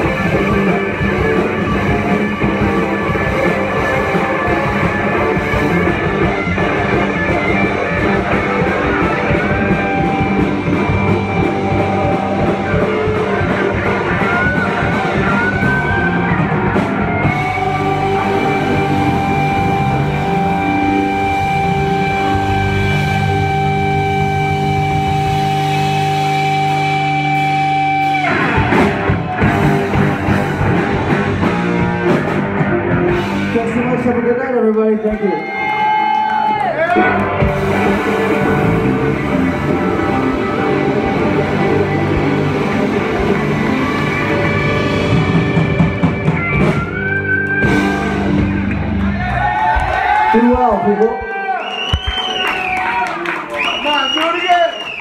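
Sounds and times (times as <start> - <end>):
sliding bending guitar notes: 0.0 - 33.8, 36.9 - 49.4
rock band playing: 0.0 - 55.0.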